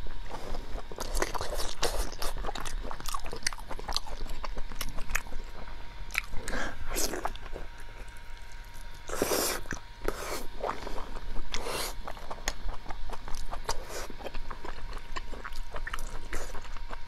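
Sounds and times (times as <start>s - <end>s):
chewing meat with mouth clicks: 0.0s - 17.0s.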